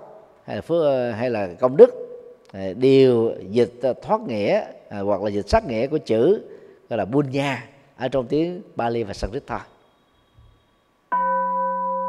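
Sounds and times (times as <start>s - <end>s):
steady bell-like tone: 9.8s - 12.0s.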